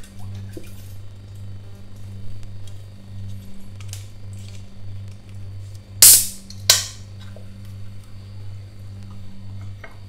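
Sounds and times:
soda can opening with hiss: 6.0s - 7.0s.

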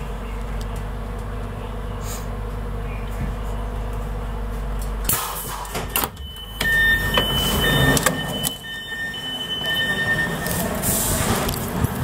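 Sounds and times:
door warning beeper: 5.6s - 11.4s.

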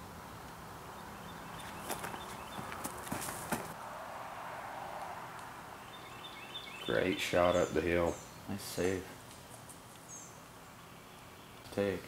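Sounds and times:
footsteps crunching dry leaves: 1.6s - 3.8s.

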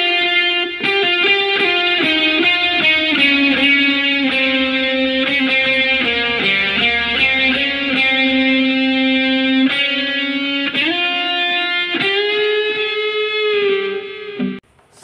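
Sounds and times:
electric guitar: 0.0s - 14.6s.

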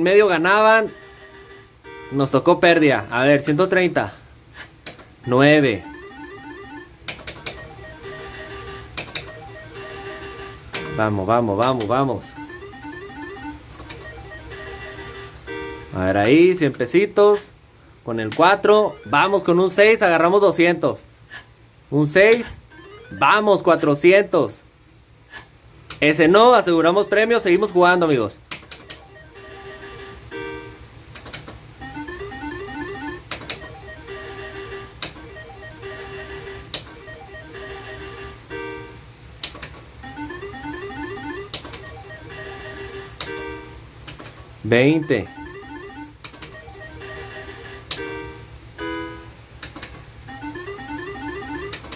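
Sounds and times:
slot machine electronic tune: 0.0s - 3.0s, 5.2s - 16.6s, 18.4s - 20.0s, 22.5s - 23.8s, 26.7s - 28.0s, 28.8s - 30.8s, 31.8s - 39.1s, 40.0s - 43.8s, 44.7s - 49.4s, 50.2s - 51.9s
rising electronic beeps: 22.7s - 23.4s
electronic jingle: 35.2s - 36.3s, 40.0s - 42.8s, 45.0s - 47.5s, 50.3s - 51.7s.

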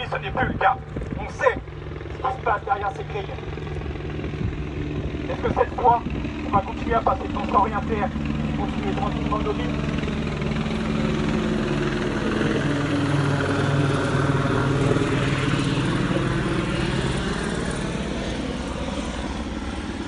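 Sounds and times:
helicopter rotor chop: 0.0s - 20.0s.

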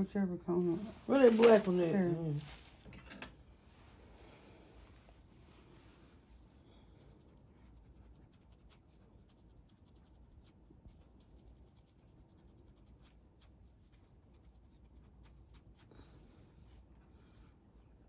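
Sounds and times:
comb scratching scalp: 0.6s - 2.9s, 5.1s - 17.0s.

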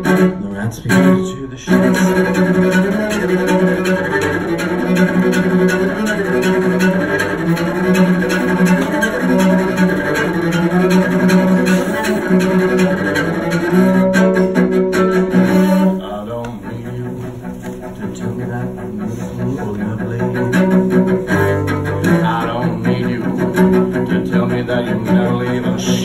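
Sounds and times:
bowed cello: 0.0s - 26.0s.

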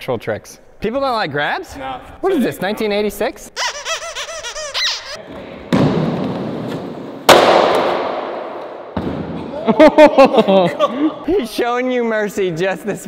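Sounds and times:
skateboard and body slamming concrete: 5.4s - 8.3s
people laughing: 9.4s - 11.5s.

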